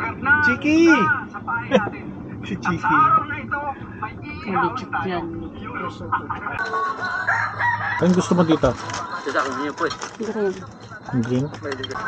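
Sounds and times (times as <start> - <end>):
rooster crowing: 6.6 - 8.4.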